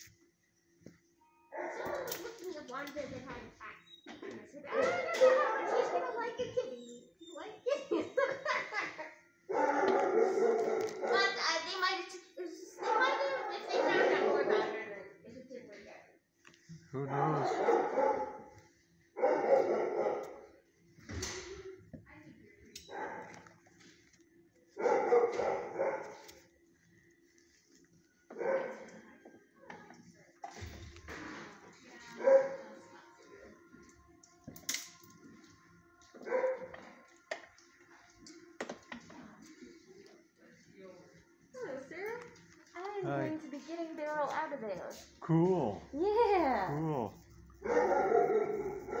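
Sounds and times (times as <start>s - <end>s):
dog barking: 1.5s - 2.4s, 5.2s - 6.6s, 9.5s - 11.5s, 12.8s - 14.7s, 17.3s - 18.6s, 19.2s - 20.6s, 22.9s - 23.4s, 24.8s - 26.3s, 28.3s - 29.0s, 32.1s - 32.8s, 36.2s - 36.9s, 47.5s - 49.0s.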